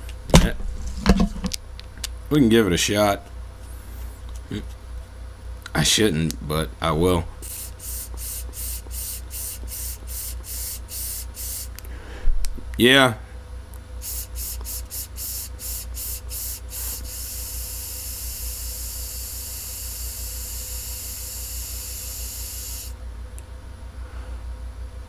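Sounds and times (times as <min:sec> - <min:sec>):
low steady hum: 0:00.0 - 0:25.0
vape pen hissing puffs: 0:07.4 - 0:11.8, 0:14.0 - 0:23.0.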